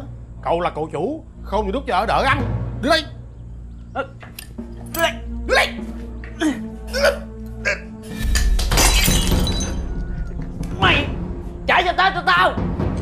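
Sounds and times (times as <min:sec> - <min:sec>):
dramatic background music: 0:00.0 - 0:13.0
ceramic bowl shattering on floor: 0:08.2 - 0:09.9.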